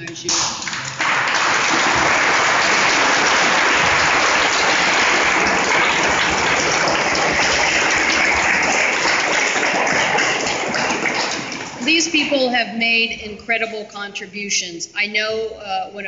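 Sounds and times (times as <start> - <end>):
audience applauding: 0.0 - 12.1.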